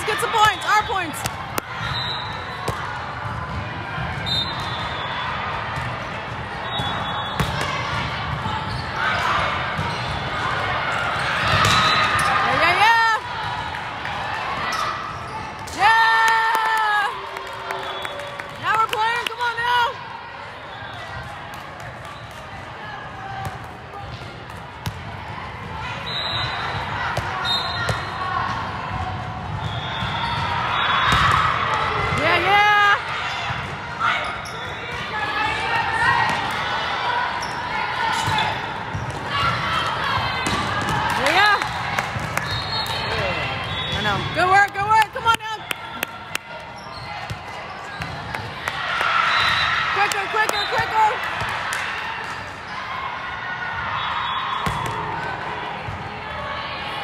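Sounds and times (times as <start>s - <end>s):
people shouting and cheering: 0.0s - 24.1s, 25.1s - 57.0s
murmur of spectators: 0.0s - 57.0s.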